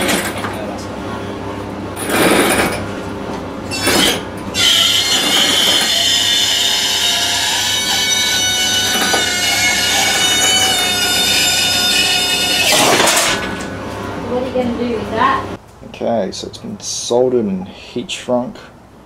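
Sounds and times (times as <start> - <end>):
high metallic squeal: 3.7 - 14.0.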